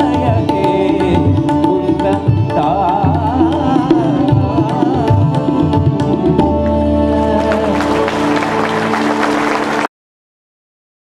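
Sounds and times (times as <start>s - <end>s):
audience applause: 7.4s - 9.9s.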